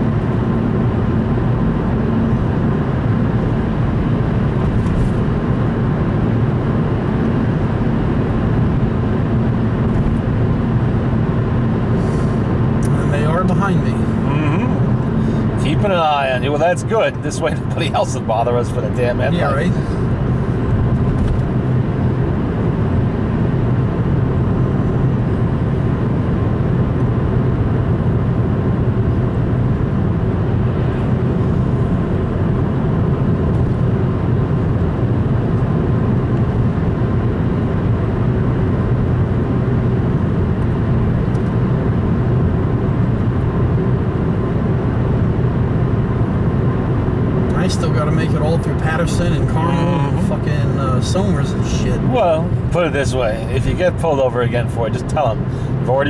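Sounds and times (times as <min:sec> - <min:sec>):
car interior driving drone: 0:00.0 - 0:56.0.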